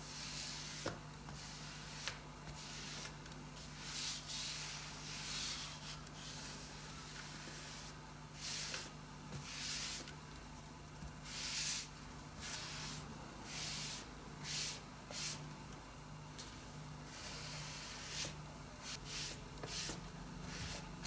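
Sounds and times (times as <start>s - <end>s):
tool swishing across wallpaper: 17.2s - 20.9s.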